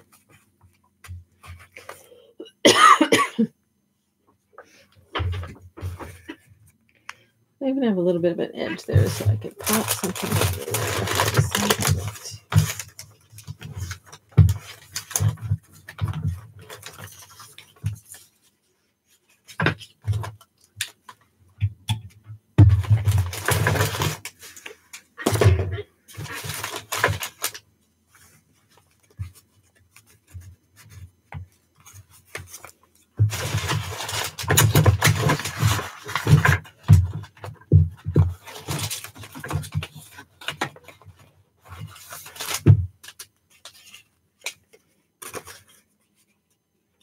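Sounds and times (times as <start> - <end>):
paper rustling and crinkling: 8.7 - 21.3, 22.6 - 46.6.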